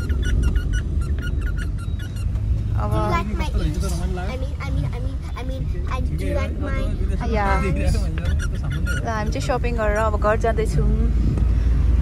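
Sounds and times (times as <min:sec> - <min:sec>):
short squeaks: 0:00.0 - 0:02.7
car cabin rumble: 0:00.0 - 0:12.0.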